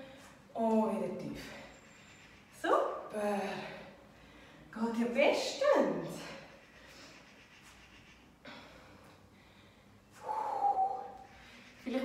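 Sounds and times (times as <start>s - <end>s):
woman breathing hard: 8.4s - 11.8s.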